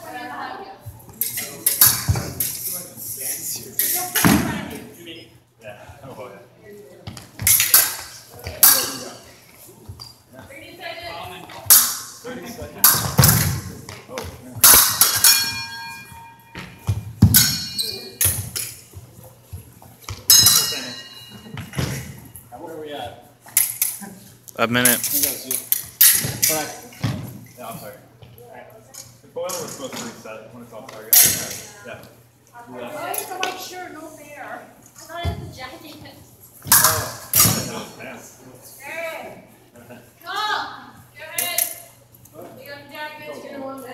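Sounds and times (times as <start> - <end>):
blades clashing metallic clink: 14.7 - 16.4, 20.3 - 21.3.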